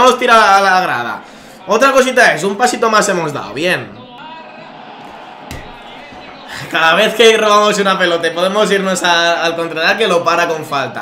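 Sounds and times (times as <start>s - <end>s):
loud knock: 5.4s - 5.9s.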